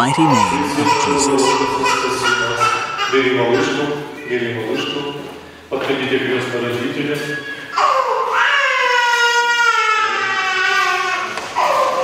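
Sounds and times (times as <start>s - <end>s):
infant crying: 0.0s - 3.8s, 7.7s - 12.0s.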